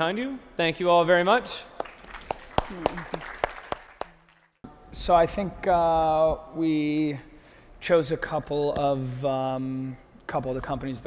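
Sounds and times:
audience applause: 1.8s - 4.6s.

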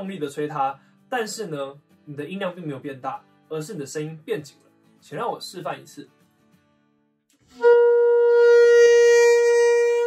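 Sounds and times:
saxophone held note: 7.5s - 10.0s.

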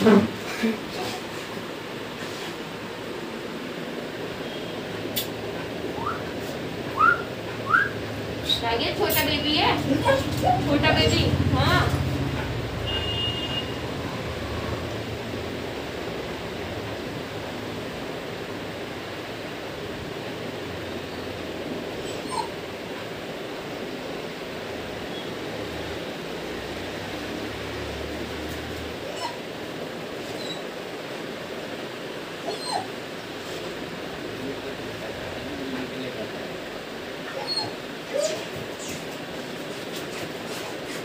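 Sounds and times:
dog whimpering: 22.0s - 22.6s, 29.0s - 29.5s, 30.3s - 30.7s, 32.4s - 33.0s, 37.2s - 39.0s.

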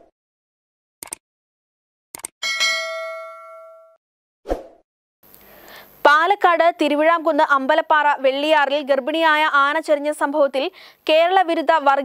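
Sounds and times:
bright bell-like chime: 2.4s - 4.0s.

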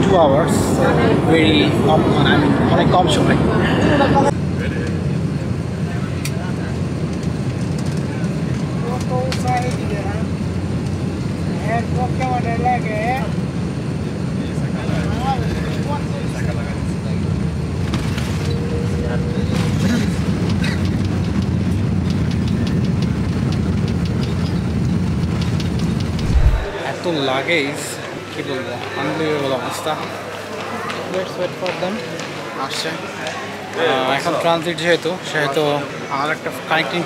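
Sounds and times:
airliner engines rumbling: 0.0s - 26.8s.

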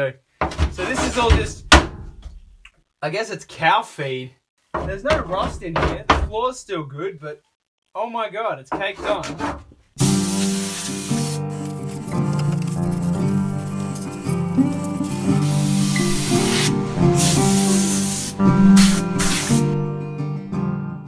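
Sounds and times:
compressed air blow gun hissing: 10.0s - 12.1s, 12.9s - 19.8s
background music: 10.0s - 21.0s.

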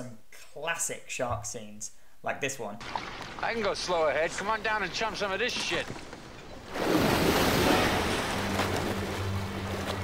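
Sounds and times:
water rushing and splashing: 2.8s - 10.0s.

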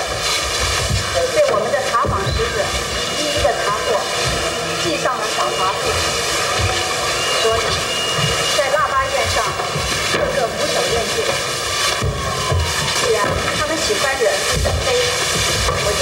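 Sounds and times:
droning held tones: 0.0s - 16.0s
people speaking: 1.1s - 6.2s, 7.4s - 7.8s, 8.5s - 11.5s, 13.0s - 16.0s.

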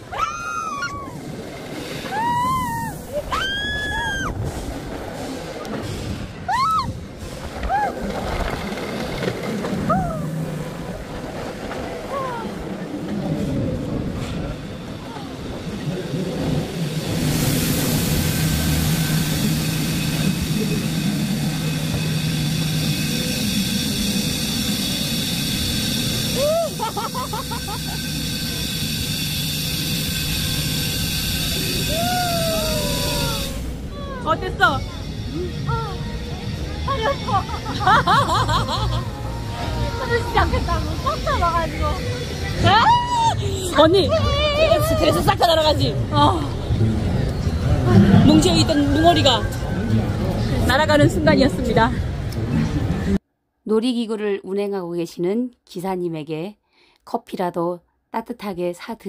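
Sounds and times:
riders shrieking and whooping: 0.0s - 4.6s, 6.4s - 10.9s, 26.1s - 28.2s, 31.6s - 34.4s, 42.5s - 45.3s
ride rushing noise with low hum: 0.0s - 53.2s.

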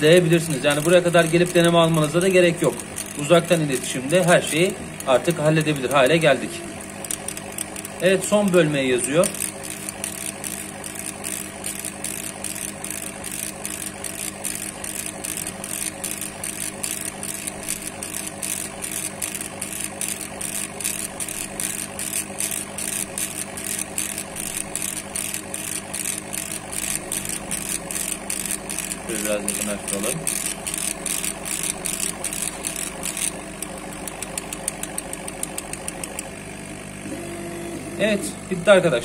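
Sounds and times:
laser engraver head moving: 0.0s - 39.0s.

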